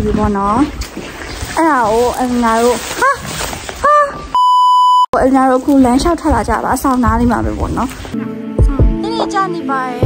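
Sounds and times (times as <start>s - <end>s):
censor bleep: 4.4s - 5.2s.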